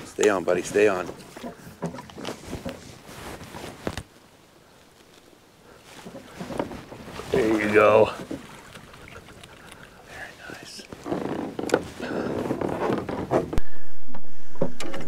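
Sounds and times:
landing net splashing in water: 0:06.0 - 0:09.7.

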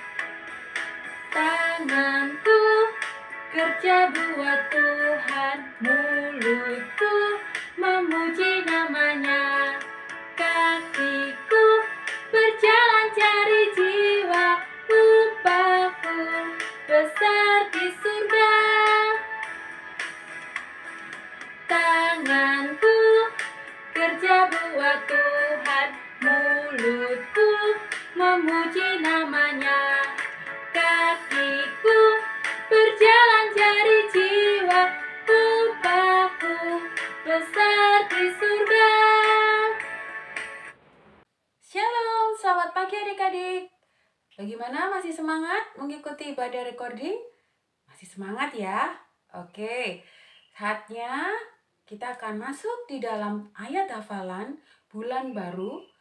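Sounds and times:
woman singing children's song: 0:01.2 - 0:19.6, 0:21.5 - 0:40.0, 0:41.7 - 0:43.8, 0:44.4 - 0:47.3, 0:48.0 - 0:56.0.

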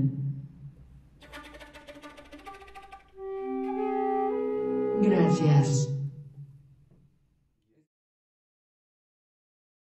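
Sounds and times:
flutes clarinet and cello ensemble: 0:01.2 - 0:06.1.

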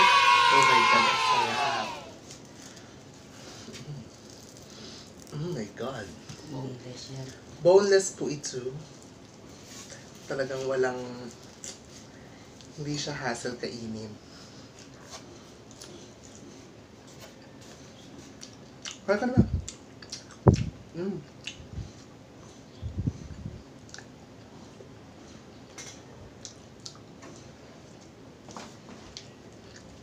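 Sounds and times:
crackles of fried fish picked apart: 0:02.2 - 0:07.4.

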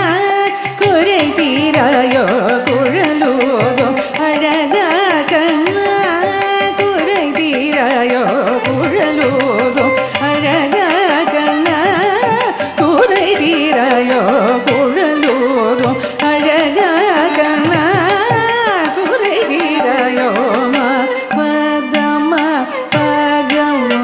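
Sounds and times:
woman singing: 0:00.0 - 0:24.0.

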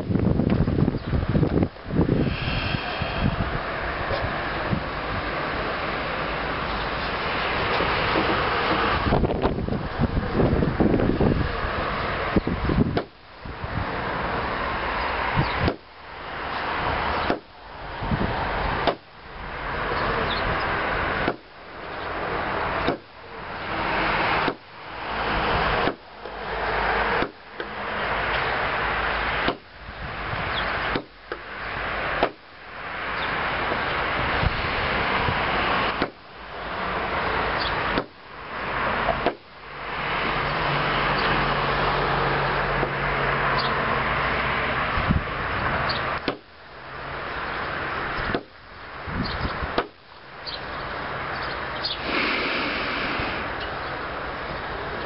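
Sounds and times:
wind noise on microphone: 0:00.0 - 0:36.1, 0:36.7 - 0:46.4, 0:47.7 - 0:55.0
knife chopping cord on wood: 0:21.2 - 0:21.4, 0:22.8 - 0:23.1, 0:25.8 - 0:26.0, 0:27.2 - 0:27.7, 0:29.4 - 0:29.7, 0:30.9 - 0:31.4, 0:35.9 - 0:36.2.

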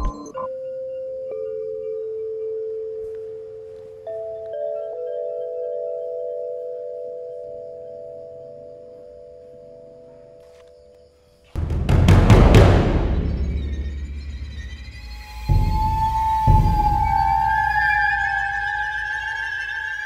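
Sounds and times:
suspense film score ringing tones: 0:11.6 - 0:20.0.

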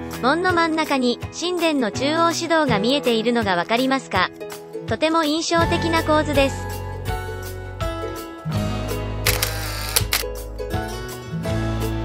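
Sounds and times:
background music: 0:00.0 - 0:12.0
camera shutter clicks: 0:09.2 - 0:10.3.

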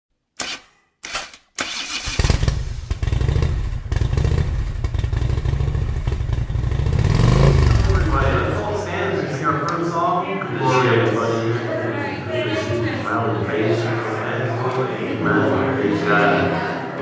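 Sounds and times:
motorcycle engine starting and idling: 0:00.4 - 0:08.8.

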